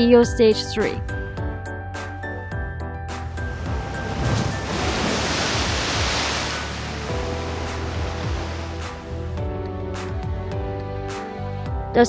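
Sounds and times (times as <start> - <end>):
background music with steady beat: 0.0 - 12.0
ocean wave breaking: 3.4 - 9.4.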